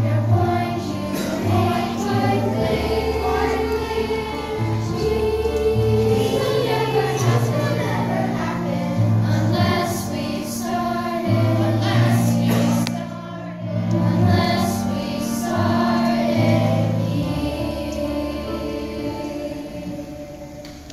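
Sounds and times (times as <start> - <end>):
children's choir singing: 0.0 - 20.9.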